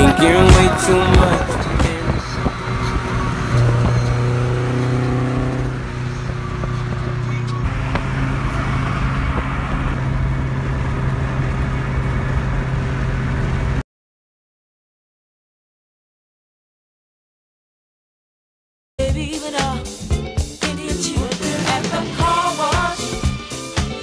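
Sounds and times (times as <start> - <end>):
cars passing at freeway speed: 0.0 - 13.8.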